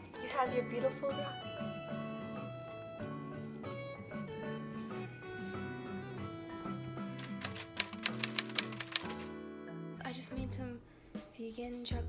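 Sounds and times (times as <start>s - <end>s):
background music: 0.0s - 12.0s
typewriter key clicks: 7.2s - 9.3s.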